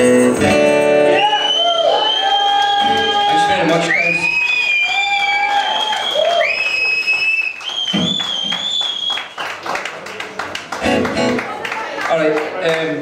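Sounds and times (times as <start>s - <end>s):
long high whistles: 1.2s - 9.4s
audience applauding: 1.2s - 13.0s.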